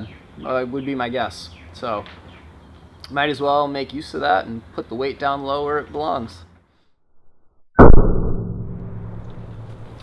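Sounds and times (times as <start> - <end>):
shotgun blast on steel tank: 7.8 - 9.6
low echo: 7.8 - 10.0.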